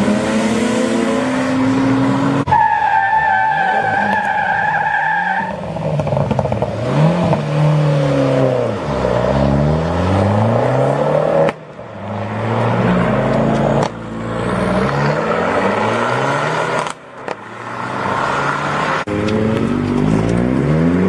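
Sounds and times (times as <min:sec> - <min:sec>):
car engine revving: 0:06.0 - 0:21.0.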